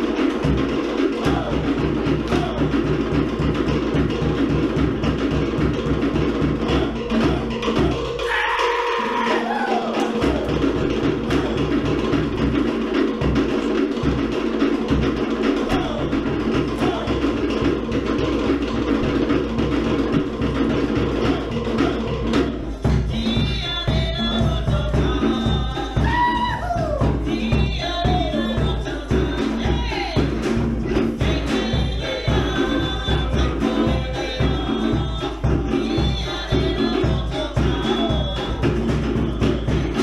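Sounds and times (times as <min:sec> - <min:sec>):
deep bass drum: 0:00.0 - 0:08.2, 0:10.1 - 0:40.0.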